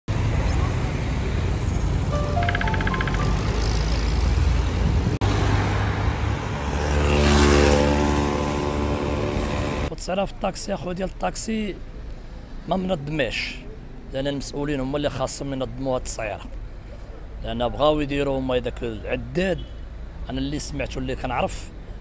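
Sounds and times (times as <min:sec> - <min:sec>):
held music chord: 0:02.1 - 0:04.0
rising run of notes: 0:02.1 - 0:04.1
cars driving past: 0:03.1 - 0:09.5.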